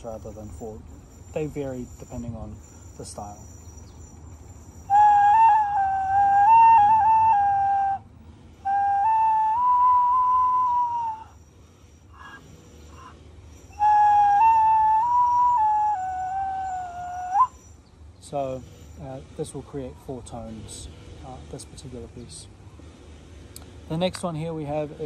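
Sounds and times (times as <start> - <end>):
bone flute notes: 4.8 - 11.4, 13.7 - 17.7.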